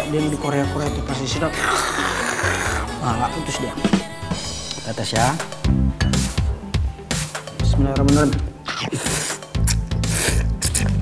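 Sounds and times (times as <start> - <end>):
person slurping noodles: 1.6 - 3.0, 8.6 - 11.0.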